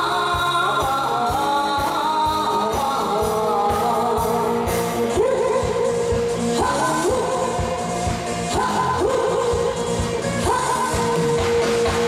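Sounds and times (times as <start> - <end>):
backing track with steady beat: 0.0 - 12.0
woman singing into microphone: 0.0 - 12.0.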